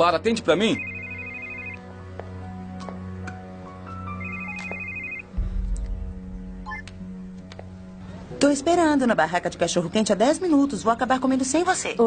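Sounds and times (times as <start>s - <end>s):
soft background film music: 0.0s - 12.0s
mobile phone ringing: 0.7s - 1.8s, 4.0s - 5.3s
low rumble: 5.3s - 8.4s.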